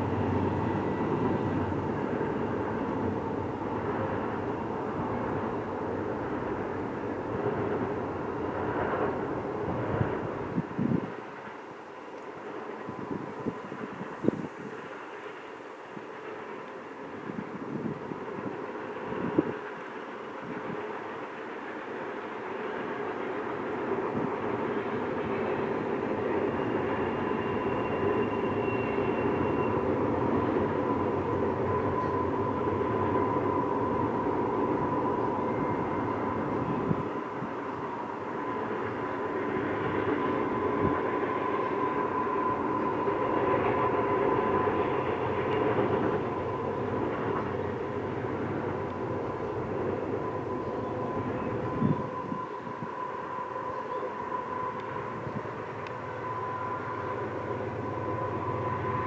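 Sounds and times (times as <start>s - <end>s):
freight train wheels rumbling on rail: 0.0s - 59.0s
thin steady whine: 0.0s - 59.0s.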